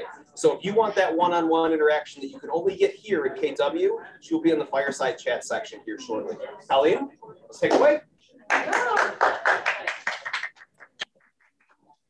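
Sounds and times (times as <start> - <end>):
audience applauding: 8.5 - 11.6
voices among claps: 8.5 - 11.9.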